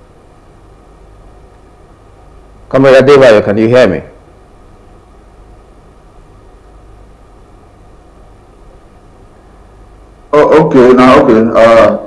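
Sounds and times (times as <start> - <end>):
faint hiss: 0.0 - 12.0
steady low hum: 0.0 - 12.0.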